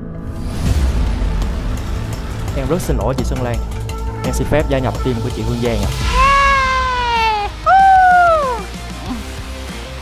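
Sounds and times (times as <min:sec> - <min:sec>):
background music: 0:00.0 - 0:10.0
person shouting jubilantly: 0:06.1 - 0:08.7.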